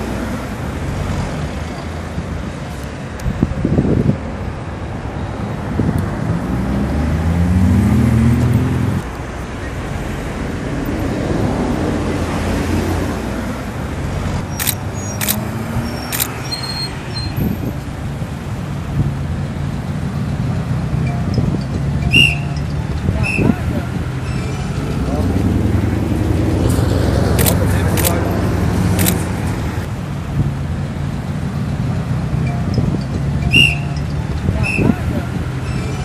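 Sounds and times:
highway traffic passing: 0:00.0 - 0:36.0
sharp clicks: 0:14.6 - 0:15.5, 0:16.1 - 0:16.4, 0:27.4 - 0:28.2, 0:29.0 - 0:29.3.

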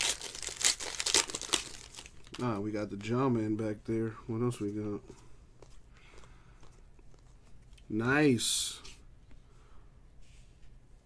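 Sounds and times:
foil wrapper crinkling and tearing: 0:00.0 - 0:03.1.

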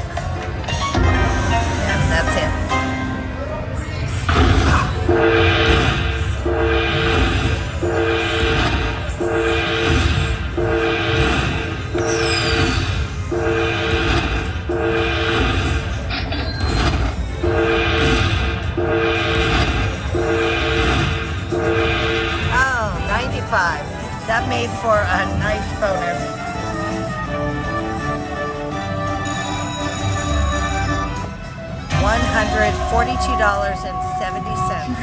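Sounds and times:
slot machine win chime: 0:29.1 - 0:31.2.

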